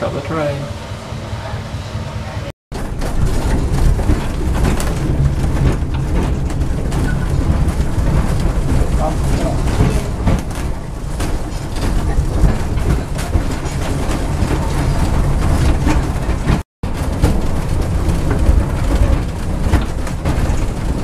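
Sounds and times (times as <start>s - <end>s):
tram rumbling along track: 0.0s - 21.0s
wheels knocking and rattling: 0.0s - 21.0s.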